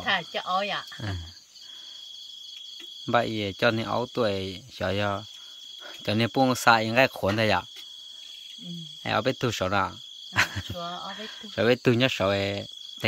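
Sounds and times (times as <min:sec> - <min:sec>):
woman talking loudly: 0:00.0 - 0:00.9
night insects trilling: 0:00.0 - 0:13.0.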